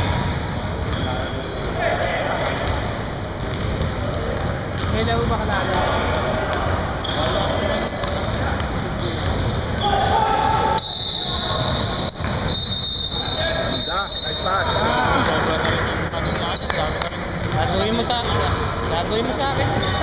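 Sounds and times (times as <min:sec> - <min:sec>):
players' voices: 0:00.0 - 0:20.0.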